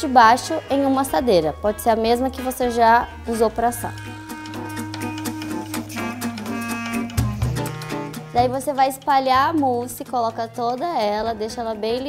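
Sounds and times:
instrumental music with steady beat: 0:00.0 - 0:11.9.

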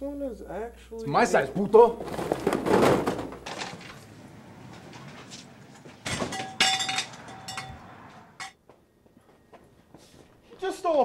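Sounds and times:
crash of man falling among boxes: 0:02.0 - 0:03.8
sharp knocks and clinks: 0:05.8 - 0:08.6.

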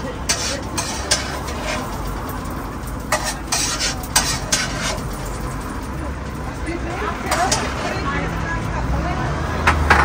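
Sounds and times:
faint voices: 0:00.0 - 0:09.8.

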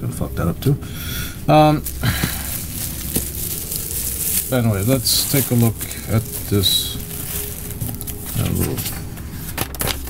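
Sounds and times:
packaging rustling and crinkling: 0:01.3 - 0:10.0.

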